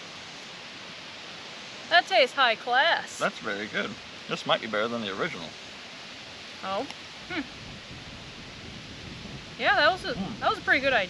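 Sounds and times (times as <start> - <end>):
open air hiss: 0.0 - 11.0.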